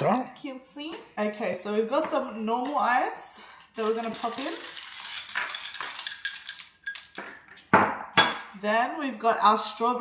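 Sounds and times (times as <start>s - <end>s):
ice cubes clinking against glass: 3.8s - 7.4s.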